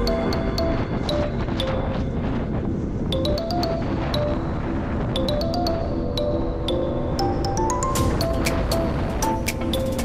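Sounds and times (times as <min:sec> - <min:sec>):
background music with ticking beat: 0:00.0 - 0:10.0.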